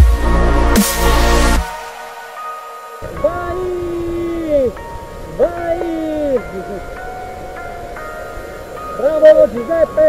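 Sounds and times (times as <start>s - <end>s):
background music with held notes: 0.0s - 10.0s.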